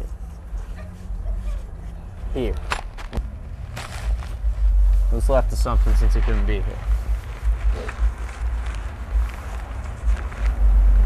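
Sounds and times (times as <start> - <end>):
low outdoor rumble: 0.0 - 11.0
short rustle: 0.1 - 11.0.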